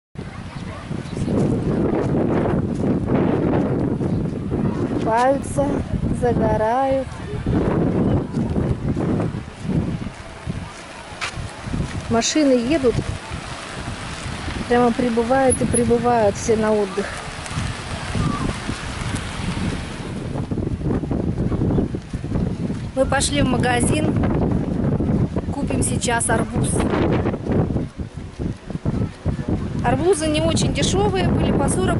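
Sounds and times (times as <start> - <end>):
wind buffeting microphone: 0.2 - 31.9.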